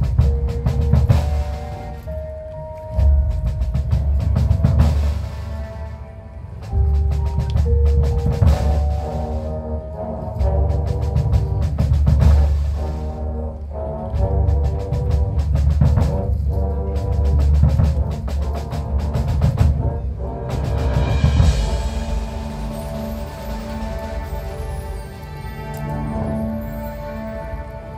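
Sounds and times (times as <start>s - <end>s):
heavy low drums: 0.0s - 27.9s
marching band playing: 0.0s - 27.9s.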